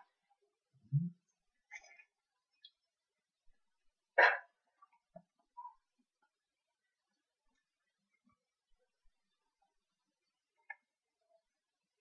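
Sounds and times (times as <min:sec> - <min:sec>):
faint small sounds: 0:00.0 - 0:12.0
dog bark: 0:04.2 - 0:04.6.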